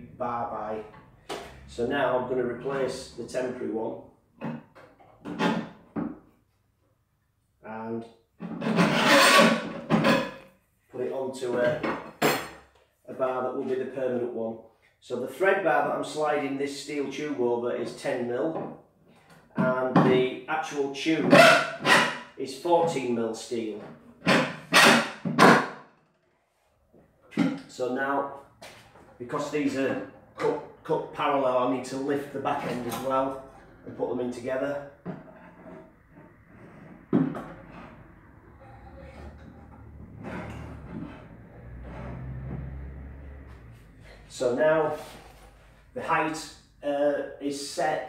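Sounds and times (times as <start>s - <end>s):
metal tube scraping: 8.4s - 10.5s, 32.5s - 43.0s.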